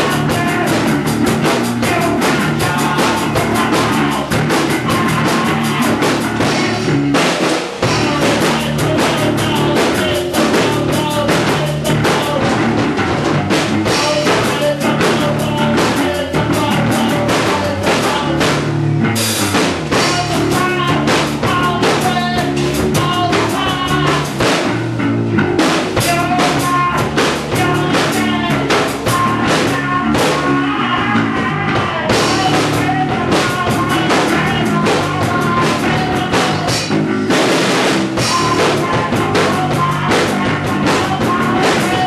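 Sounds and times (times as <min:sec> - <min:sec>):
drummer singing: 0:00.0 - 0:42.0
punk rock band playing: 0:00.0 - 0:42.0.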